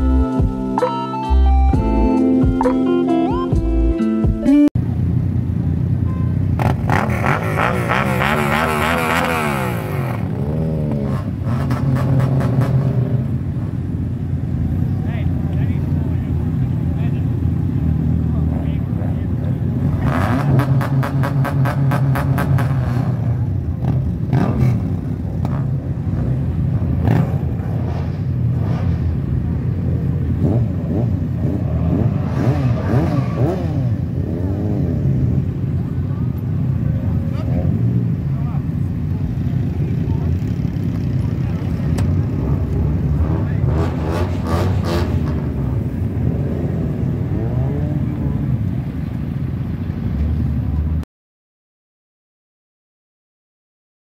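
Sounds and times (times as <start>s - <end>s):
vehicle engines idling and revving: 0.0s - 51.0s
people talking: 14.8s - 17.4s, 18.1s - 19.8s, 35.8s - 44.1s, 47.3s - 48.9s.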